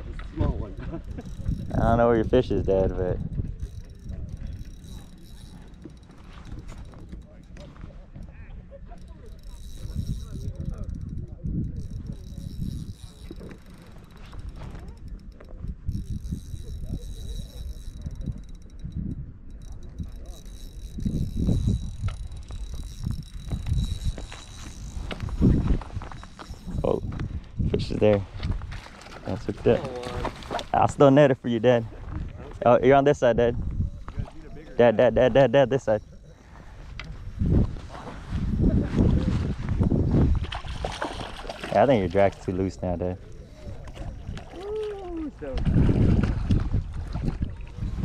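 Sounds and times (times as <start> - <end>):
wind rumble on microphone: 0.0 - 48.0
fishing reel clicking: 0.1 - 31.8, 32.8 - 37.7, 40.4 - 45.8.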